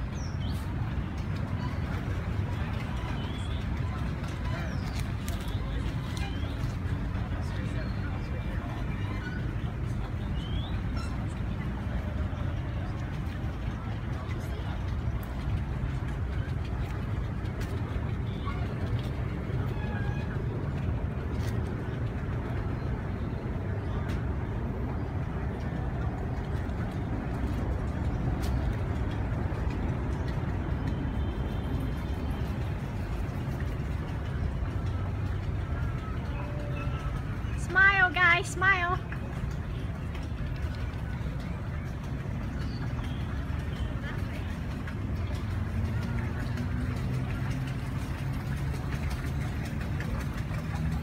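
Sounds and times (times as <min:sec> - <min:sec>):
outdoor background rumble: 0:00.0 - 0:51.0.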